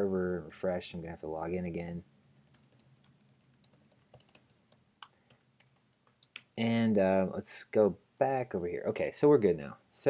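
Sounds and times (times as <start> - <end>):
computer keyboard typing: 2.4 - 6.5.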